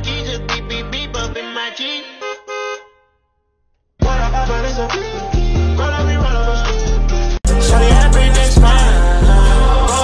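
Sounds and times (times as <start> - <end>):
car horn honking: 1.6 - 3.4.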